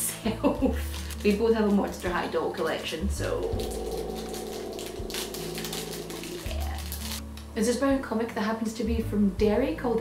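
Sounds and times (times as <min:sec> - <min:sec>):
steady low hum: 0:03.0 - 0:08.1.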